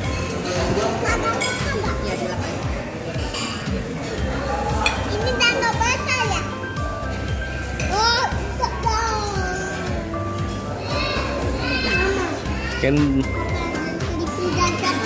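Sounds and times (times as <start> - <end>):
background music: 0.0 - 15.0
young children's voices: 5.0 - 6.6, 7.8 - 15.0.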